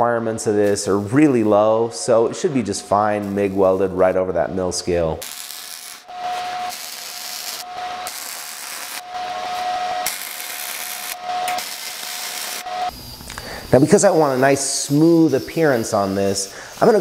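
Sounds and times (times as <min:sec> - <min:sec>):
steady welder tone: 0:00.4 - 0:17.0
welding arc crackling hiss: 0:05.1 - 0:17.0.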